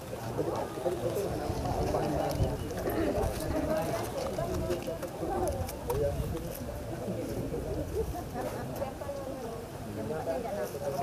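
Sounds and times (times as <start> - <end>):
indistinct chatter of people: 0.0 - 11.0.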